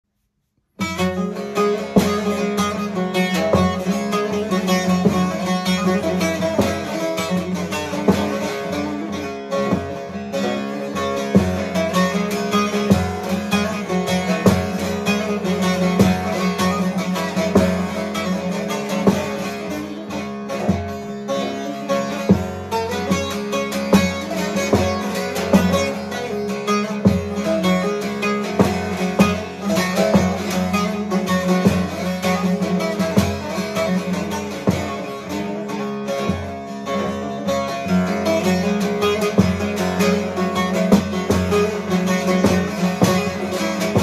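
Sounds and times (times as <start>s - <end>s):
plucked long-necked lute: 0.8s - 44.0s.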